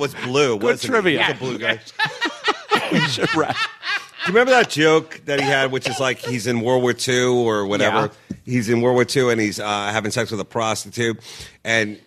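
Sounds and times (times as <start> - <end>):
people laughing: 0.0 - 6.6.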